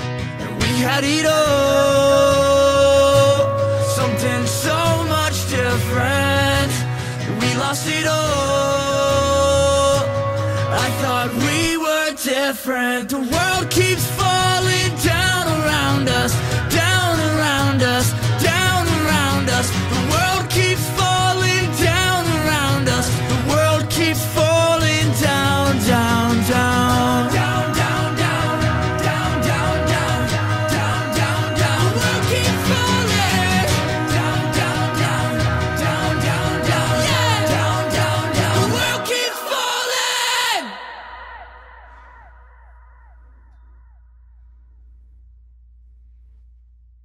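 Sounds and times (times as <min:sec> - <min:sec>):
acoustic band backing: 0:00.0 - 0:12.5, 0:13.1 - 0:41.2
man singing sliding notes: 0:00.5 - 0:42.0.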